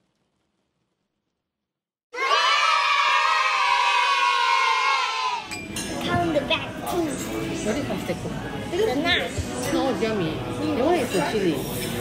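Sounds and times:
children cheering: 0:02.1 - 0:05.5.

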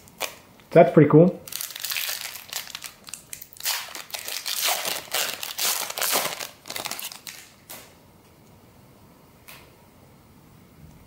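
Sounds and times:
plastic wrapper crinkling: 0:00.0 - 0:00.5, 0:01.4 - 0:07.9.

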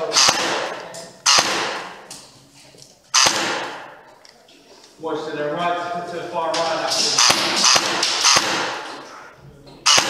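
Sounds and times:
airsoft gunshots echoing: 0:00.0 - 0:02.1, 0:03.1 - 0:04.0, 0:06.6 - 0:09.1.

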